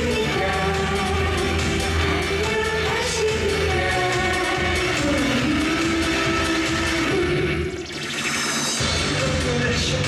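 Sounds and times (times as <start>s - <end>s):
women's vocal trio singing: 0.0s - 7.8s
live pop band: 0.0s - 7.9s.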